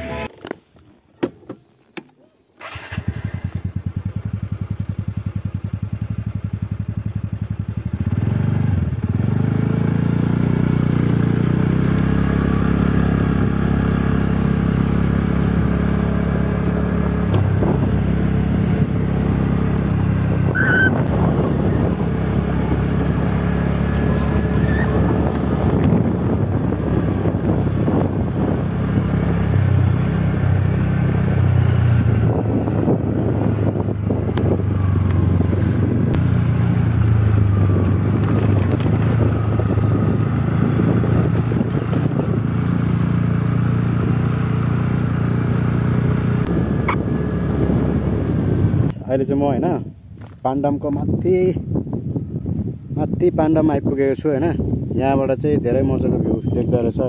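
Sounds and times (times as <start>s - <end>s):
motorcycle engine running: 0.0s - 0.3s, 2.6s - 52.9s.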